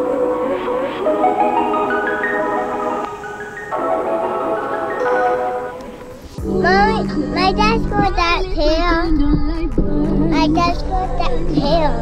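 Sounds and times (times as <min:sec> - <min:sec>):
sustained low chords: 0:02.6 - 0:11.6
high-pitched voice singing: 0:05.0 - 0:12.0.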